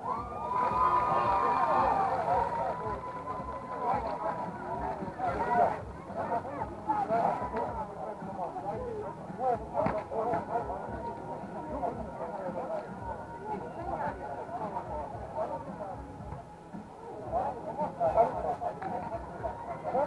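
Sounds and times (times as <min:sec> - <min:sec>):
people talking indistinctly: 0:00.0 - 0:20.0.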